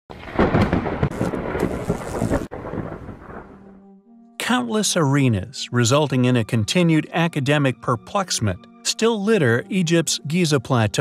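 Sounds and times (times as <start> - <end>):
low thunder rumble: 0.1 - 3.8
crackling thunder clap: 0.1 - 3.9.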